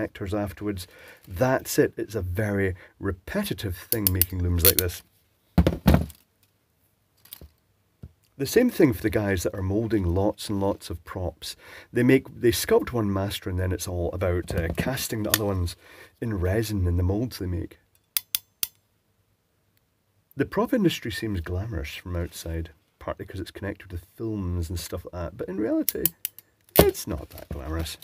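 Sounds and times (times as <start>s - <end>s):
tool clunking on wooden bench: 5.6s - 6.2s
crimping tool clicking: 25.9s - 26.9s.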